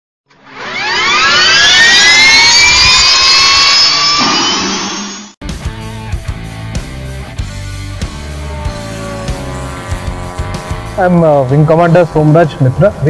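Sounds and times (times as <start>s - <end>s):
jet turbine whine rising: 0.4s - 5.4s.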